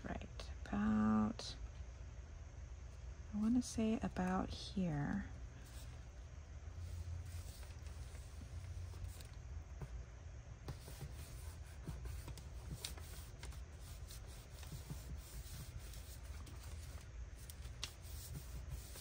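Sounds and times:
low steady hum: 0:00.0 - 0:19.0
paper rustling under hands: 0:06.8 - 0:09.9, 0:10.7 - 0:19.0.

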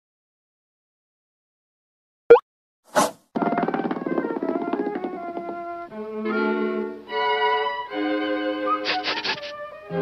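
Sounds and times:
orchestral cartoon music: 0:04.0 - 0:10.0.

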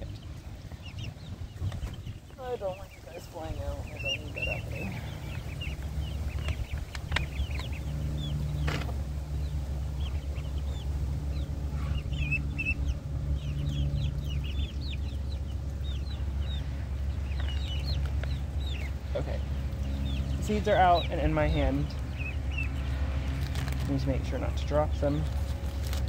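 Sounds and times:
chickens clucking and peeping: 0:00.0 - 0:26.0
steady low rumble: 0:00.0 - 0:26.0.

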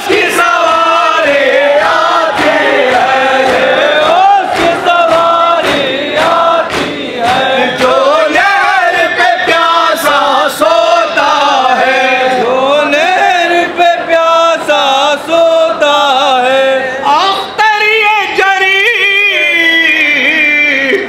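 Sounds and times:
crowd of men chanting: 0:00.0 - 0:17.4
hands slapping chests: 0:00.8 - 0:08.1
man singing mournfully: 0:07.2 - 0:21.0.

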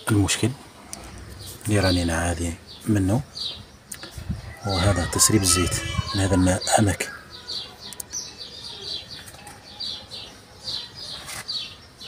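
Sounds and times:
small bird chirping: 0:00.8 - 0:12.0.

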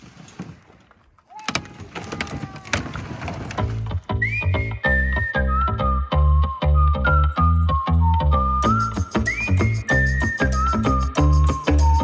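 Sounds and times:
branches scraping and clattering: 0:00.0 - 0:04.1
thin whistle-like tone: 0:04.1 - 0:12.0.

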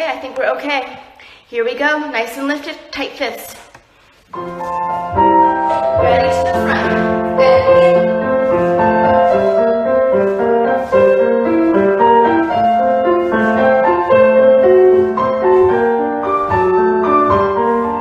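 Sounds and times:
solo piano melody: 0:04.3 - 0:18.0.

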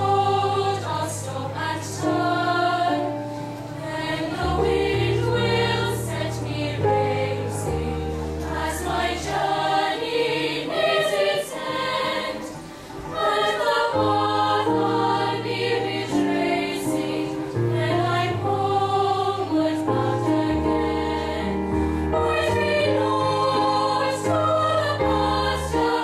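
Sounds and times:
girls' choir singing: 0:00.0 - 0:26.0.

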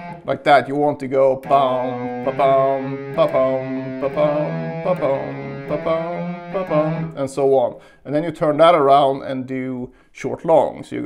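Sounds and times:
electric guitar legato notes: 0:00.0 - 0:00.4, 0:01.4 - 0:07.5.

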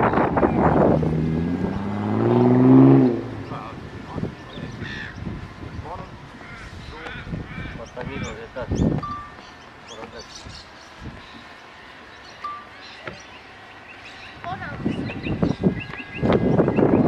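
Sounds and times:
crow cawing: 0:04.8 - 0:05.2, 0:06.4 - 0:08.4.

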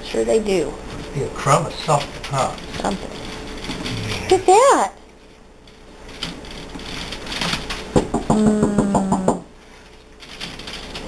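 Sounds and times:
puppy growling: 0:03.8 - 0:04.6.

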